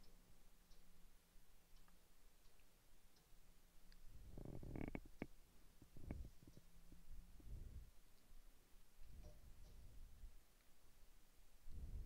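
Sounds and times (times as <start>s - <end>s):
soft clicks and knocks: 9.0s - 9.9s.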